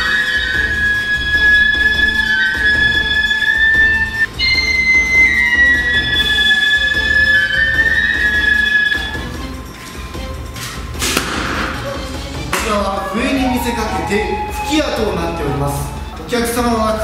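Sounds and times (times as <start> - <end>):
flute playing slow melody: 0.0 - 10.4, 11.8 - 16.8.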